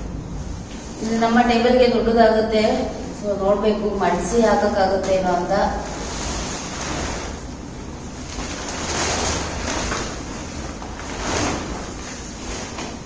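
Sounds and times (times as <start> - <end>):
sheet rustling and flapping: 4.9 - 13.0.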